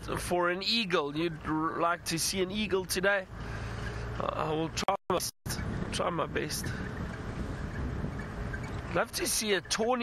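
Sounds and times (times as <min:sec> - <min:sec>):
vehicle engine and tyres rumbling: 0:00.0 - 0:10.0.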